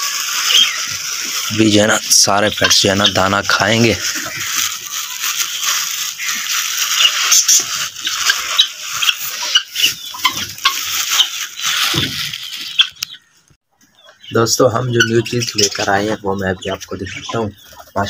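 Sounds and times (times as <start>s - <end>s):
budgerigars chirping: 0.0s - 18.0s.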